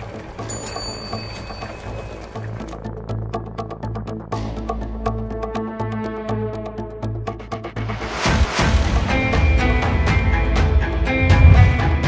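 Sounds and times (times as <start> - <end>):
bright bell-like ring: 0.5 - 2.2
background music with bass: 2.2 - 12.0.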